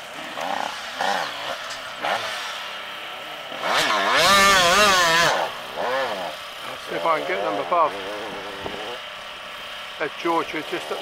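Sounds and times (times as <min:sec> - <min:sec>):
distant dirt bike engine drone: 0:00.0 - 0:11.0.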